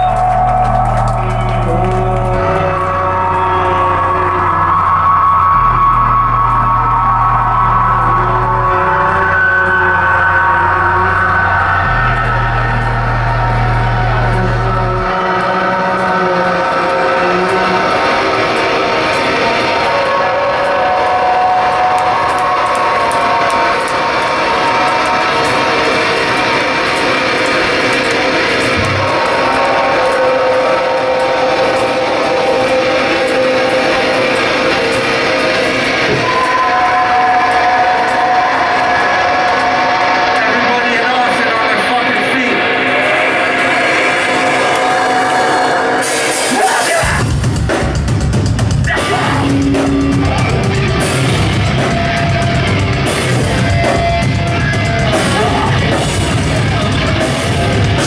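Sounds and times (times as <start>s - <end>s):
deep bass notes: 0.0s - 58.0s
live metalcore band playing: 0.0s - 58.0s.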